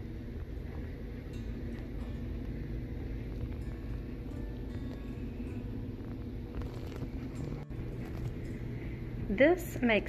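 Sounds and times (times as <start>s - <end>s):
low hum: 0.0s - 10.0s
soft background music: 0.0s - 10.0s.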